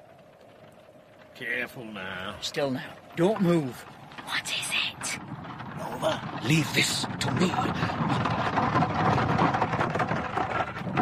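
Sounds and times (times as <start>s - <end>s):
dense crackling and rustling: 0.0s - 11.0s.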